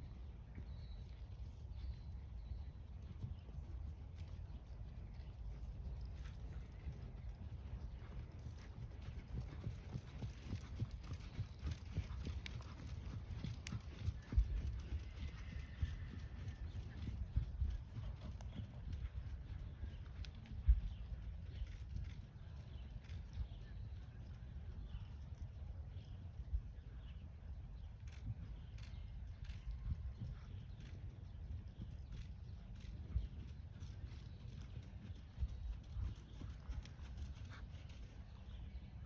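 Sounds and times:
horse hoofbeats on sand: 0:05.3 - 0:22.2, 0:28.1 - 0:38.6.

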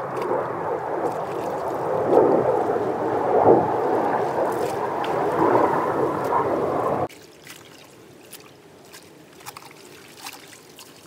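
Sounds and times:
clothes sloshing in water: 0:00.0 - 0:02.8, 0:04.0 - 0:11.0.

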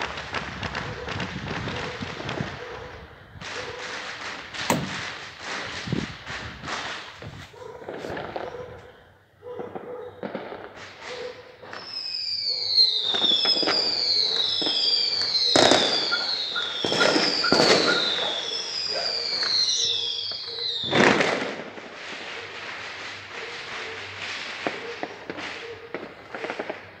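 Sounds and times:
firework bangs: 0:00.0 - 0:02.6, 0:03.4 - 0:08.5, 0:09.7 - 0:27.0
firework crackling: 0:00.0 - 0:02.6, 0:03.4 - 0:08.4, 0:10.3 - 0:27.0
whistling fireworks: 0:00.0 - 0:08.6, 0:09.6 - 0:27.0.

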